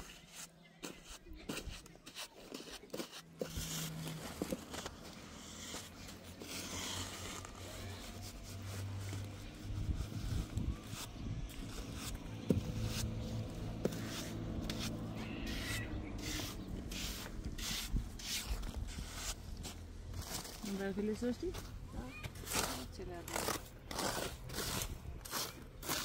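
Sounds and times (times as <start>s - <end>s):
trowel scraping wet concrete: 0.0s - 20.8s, 22.4s - 26.0s.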